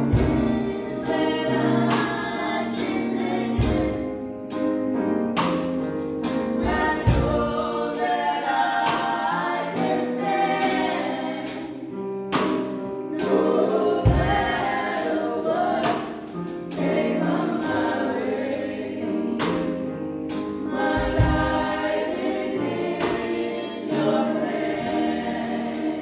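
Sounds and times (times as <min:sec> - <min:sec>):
women singing gospel song: 0:00.0 - 0:04.2, 0:06.6 - 0:11.9, 0:13.2 - 0:19.7, 0:20.6 - 0:26.0
keyboard accompaniment: 0:00.0 - 0:26.0.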